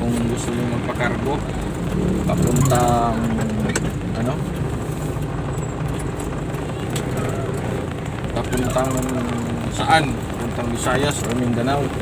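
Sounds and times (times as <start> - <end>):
road noise: 0.0 - 12.0
truck engine running: 0.0 - 12.0.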